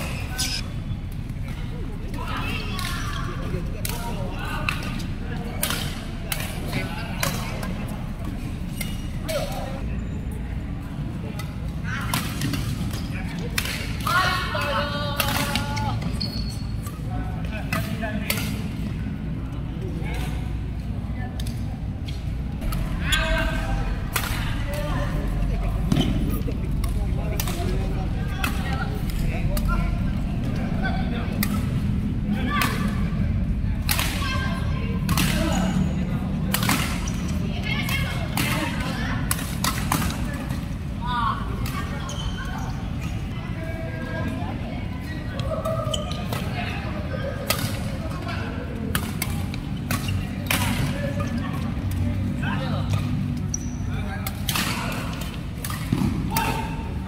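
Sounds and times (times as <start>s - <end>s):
rackets striking shuttlecock: 3.8s - 9.6s, 21.4s - 29.9s.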